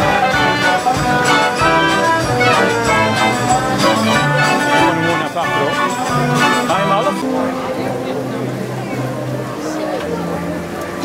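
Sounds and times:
people's voices: 0:00.0 - 0:11.0
street organ music: 0:00.0 - 0:11.0.

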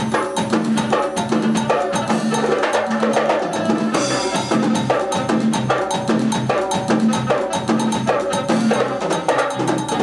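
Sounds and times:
drum kit: 0:00.0 - 0:10.0
electric bass: 0:00.0 - 0:10.0
fast even percussion pattern: 0:00.0 - 0:10.0
keyboard: 0:00.0 - 0:10.0.

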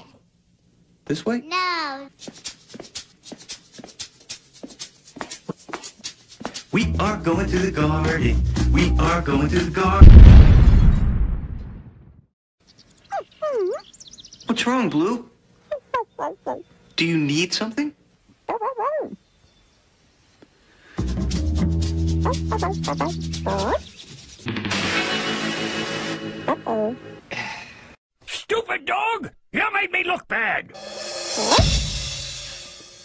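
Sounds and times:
cartoon puppy bark: 0:22.2 - 0:23.8, 0:26.5 - 0:27.0.

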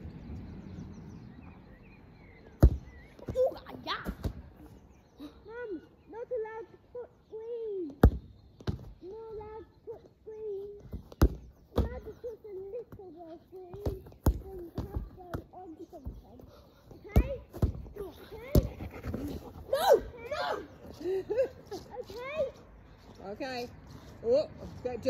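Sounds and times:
football kick thuds: 0:02.6 - 0:03.4.

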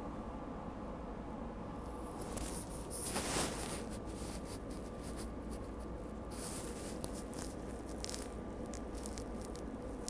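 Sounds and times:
faint thin whine: 0:00.0 - 0:10.0.

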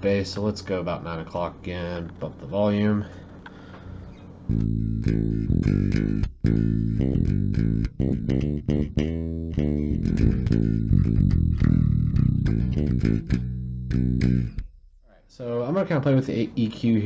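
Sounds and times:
plucked bass guitar notes: 0:04.4 - 0:15.3.

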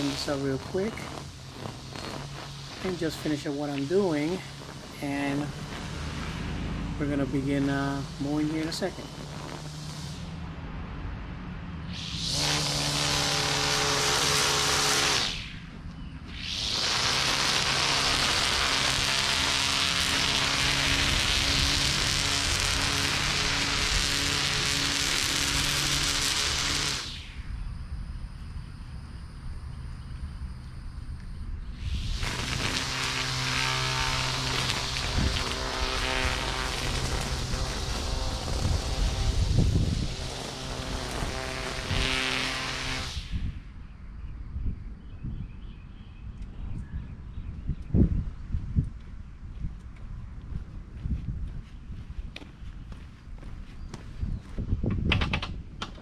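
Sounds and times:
distant string trimmer whine: 0:00.0 - 0:43.3.

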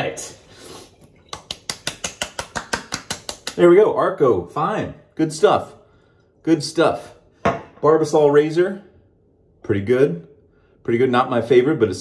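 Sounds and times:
wet hands slapping face: 0:01.1 - 0:03.8.

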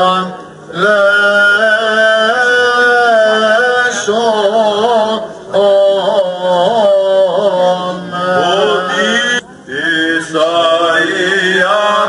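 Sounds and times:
voices chanting on long ornamented notes: 0:00.0 - 0:12.0.

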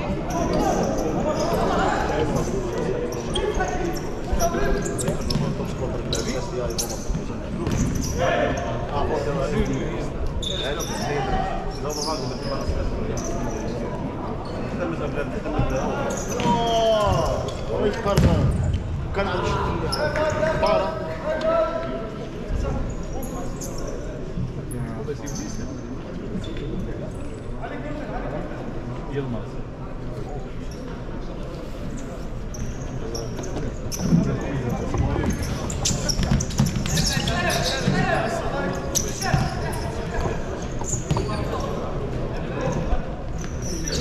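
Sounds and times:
spectators chatting: 0:00.0 - 0:44.0
ball kicked and bouncing on court: 0:16.4 - 0:16.6, 0:18.2 - 0:18.9.

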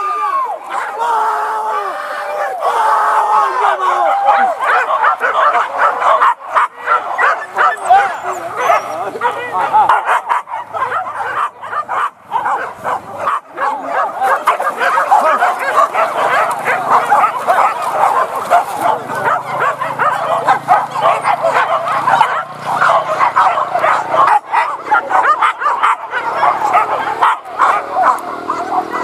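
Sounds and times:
hunters hollering: 0:00.0 - 0:29.0
dogs yelping and barking: 0:00.5 - 0:01.1, 0:03.5 - 0:29.0.

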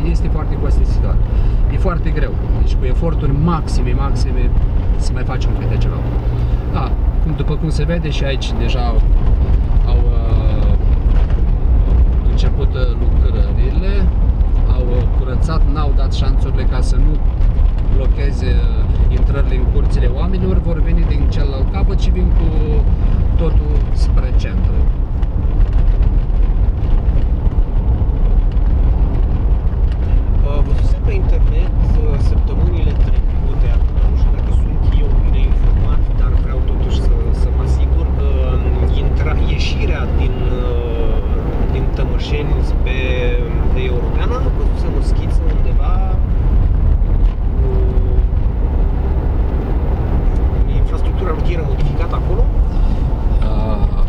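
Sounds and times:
car engine and road rumble: 0:00.0 - 0:54.0.

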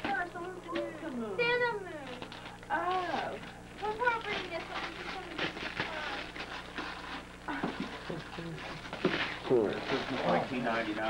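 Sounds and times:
wrapping paper crinkling: 0:02.0 - 0:11.0.

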